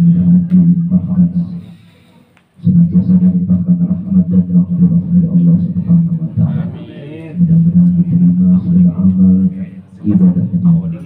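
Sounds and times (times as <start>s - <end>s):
man chanting into microphone: 0.0s - 1.8s, 2.6s - 11.0s.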